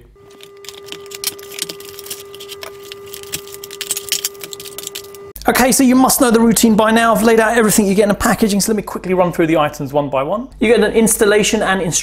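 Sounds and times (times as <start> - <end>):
steady hum: 0.0 - 7.8
cardboard packaging clicks and rustles: 0.2 - 5.4.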